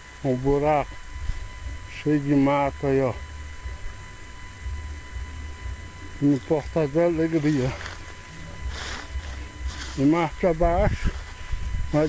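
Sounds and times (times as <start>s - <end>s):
grass rustling: 0.0s - 12.0s
wind and handling rumble: 7.3s - 12.0s.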